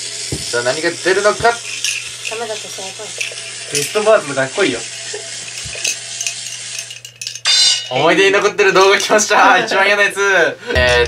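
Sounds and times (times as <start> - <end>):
rapid clicking of spinning wheel: 1.6 - 7.4
short bright ringing: 7.4 - 8.0.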